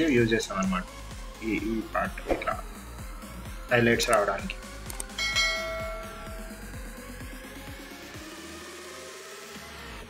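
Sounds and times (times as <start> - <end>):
electronic music with beat: 0.0 - 10.0
bell chime: 5.2 - 6.8.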